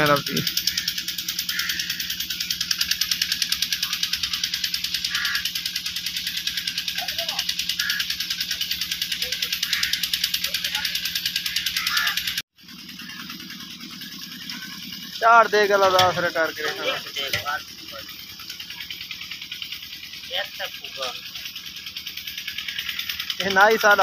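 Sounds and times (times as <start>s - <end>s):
pulsing drone with hiss: 0.0s - 24.0s.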